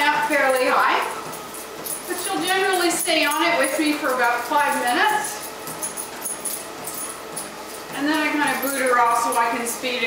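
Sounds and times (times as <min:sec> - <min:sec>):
footfalls on treadmill belt: 0:00.0 - 0:10.0
treadmill belt and motor whine: 0:00.0 - 0:10.0.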